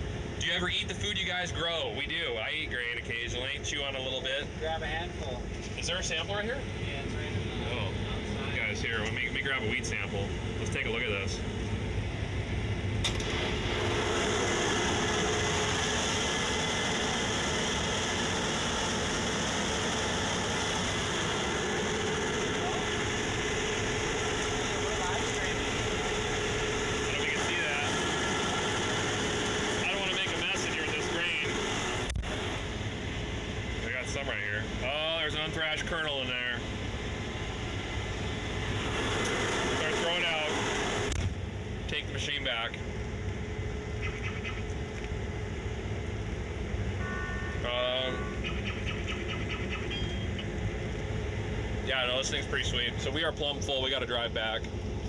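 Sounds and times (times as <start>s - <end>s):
combine harvester running: 0.0s - 55.0s.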